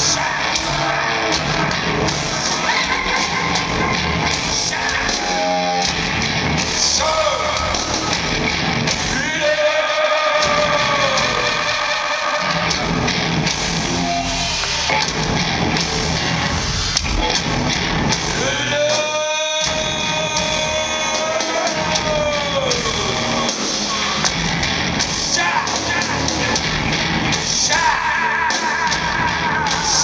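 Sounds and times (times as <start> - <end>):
live rock band playing: 0.0 - 30.0
man singing long notes: 9.1 - 12.7, 18.4 - 23.6.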